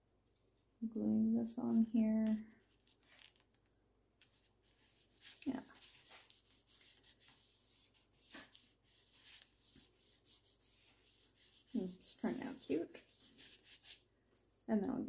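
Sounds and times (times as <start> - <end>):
paper rubbing and rustling: 2.2 - 14.1.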